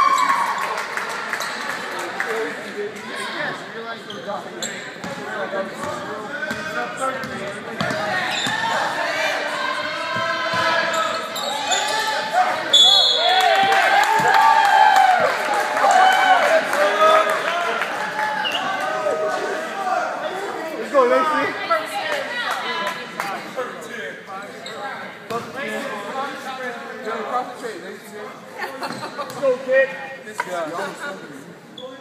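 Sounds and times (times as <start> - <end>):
many voices shouting and talking: 0.0 - 32.0.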